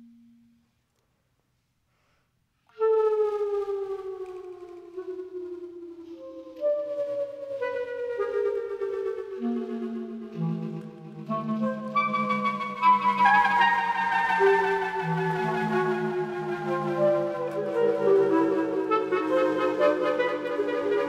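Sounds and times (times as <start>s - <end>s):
clarinet sustained tones: 0.0s - 0.6s, 2.7s - 21.0s.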